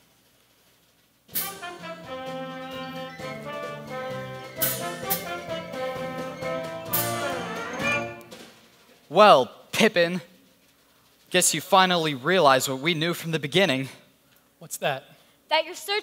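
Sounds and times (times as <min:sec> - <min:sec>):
orchestra playing held chords: 0:01.3 - 0:08.5.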